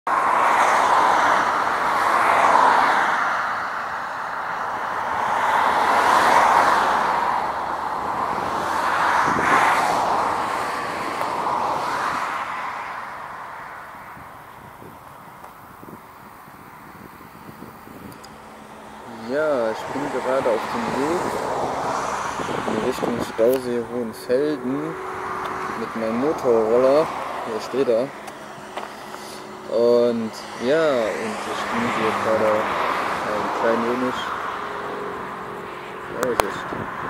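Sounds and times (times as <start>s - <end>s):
cars passing on road: 0.0s - 37.0s.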